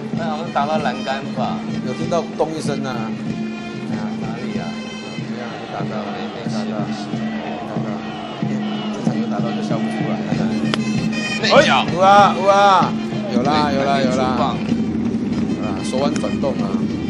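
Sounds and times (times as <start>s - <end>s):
cheering-section music: 0.0s - 17.0s
horn-like tones: 2.9s - 17.0s
stadium crowd noise: 3.1s - 17.0s
crowd chanting: 4.7s - 15.1s.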